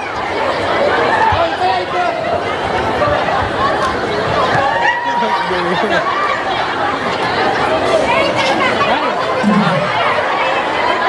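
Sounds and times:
crowd babble: 0.0s - 11.0s.

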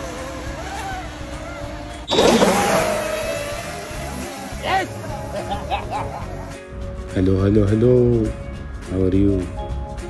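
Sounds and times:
model speedboat motor whine: 0.0s - 6.6s.

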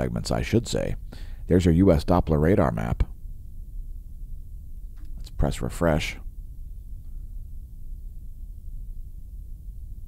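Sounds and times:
low steady background rumble: 0.0s - 10.0s.

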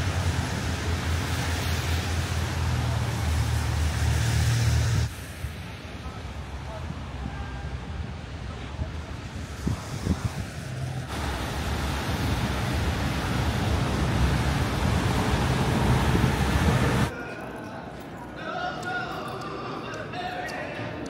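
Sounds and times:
traffic rush: 0.0s - 20.1s
wind on microphone: 4.8s - 17.1s
faint voices: 15.6s - 21.0s.

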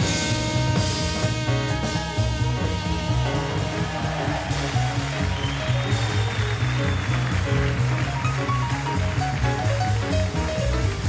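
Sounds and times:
acoustic piano: 0.0s - 11.0s
drums: 0.0s - 11.0s
upright bass line: 0.0s - 11.0s.

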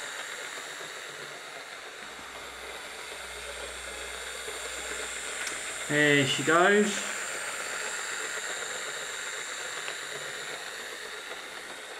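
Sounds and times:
small electric motor whirring: 0.0s - 11.9s
wheels rolling on rails: 0.0s - 11.9s.

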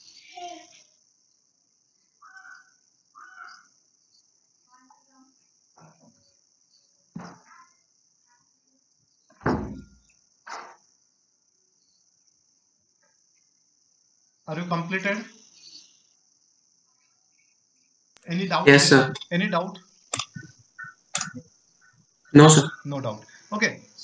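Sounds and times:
steady high hiss: 18.2s - 21.4s, 22.4s - 24.0s
faint voice fragments: 18.3s - 20.5s, 22.4s - 24.0s.

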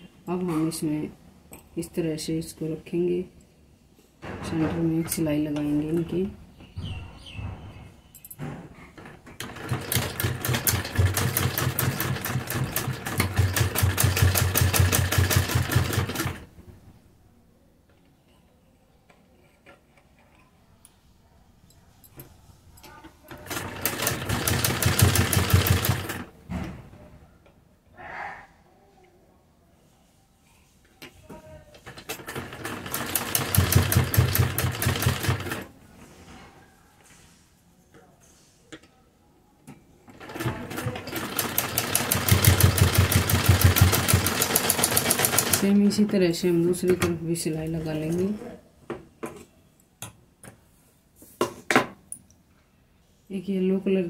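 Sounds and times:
sewing machine stitching: 9.0s - 16.5s, 23.3s - 26.3s, 31.8s - 35.7s, 40.1s - 46.1s.

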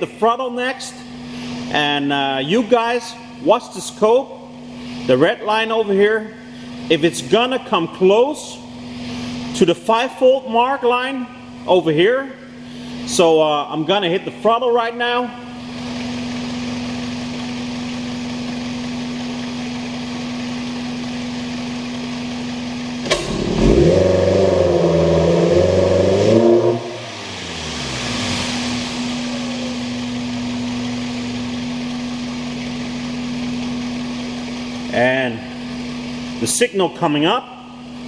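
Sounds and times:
car engine idling and revving: 0.9s - 2.4s, 3.2s - 9.9s, 15.3s - 37.0s.

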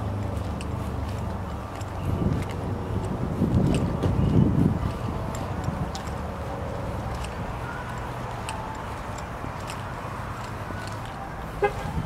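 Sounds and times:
footsteps on asphalt: 0.0s - 12.0s
low outdoor rumble: 0.0s - 12.0s.

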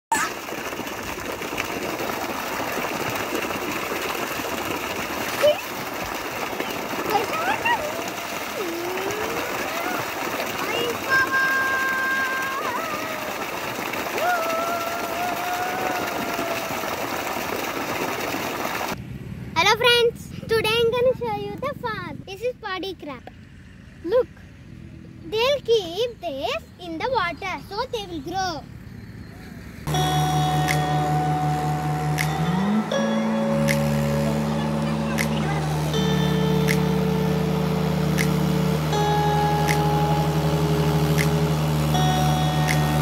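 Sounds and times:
water gushing from pipe: 0.1s - 19.0s, 29.9s - 43.0s
child talking: 5.4s - 5.7s, 7.0s - 8.0s, 8.6s - 13.3s, 19.6s - 23.3s, 24.0s - 24.4s, 25.2s - 28.7s, 34.6s - 35.7s
child calling out: 7.2s - 13.4s, 14.2s - 16.9s.

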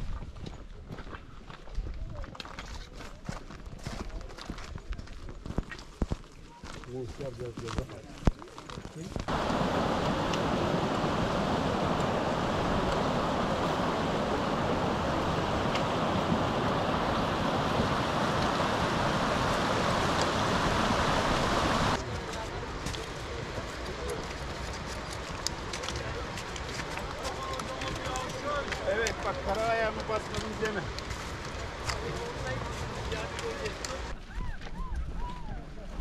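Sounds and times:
stream rushing over rocks: 9.3s - 34.2s.

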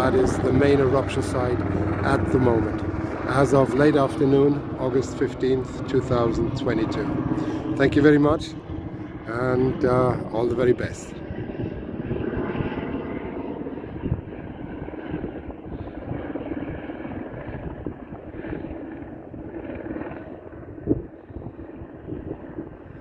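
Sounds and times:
low volcanic rumble: 0.0s - 23.0s.

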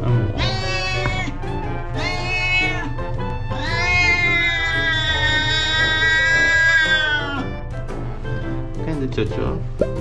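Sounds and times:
cat yowling: 0.3s - 7.6s.

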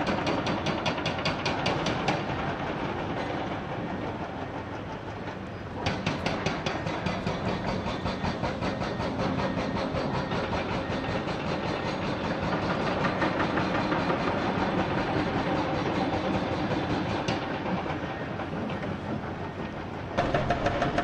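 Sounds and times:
hydraulic rock breaker hammering: 0.0s - 3.1s, 5.4s - 21.0s
diesel excavator engines running: 0.1s - 21.0s.

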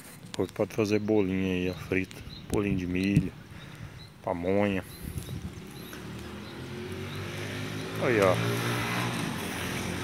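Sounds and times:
engine humming: 3.6s - 10.0s.

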